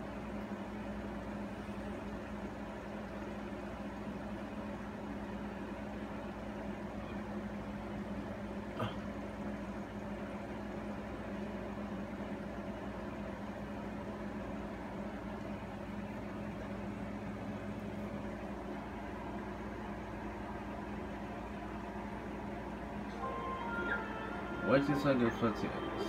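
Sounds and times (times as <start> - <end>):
electrical hum and hiss: 0.0 - 26.0
music: 23.1 - 26.0.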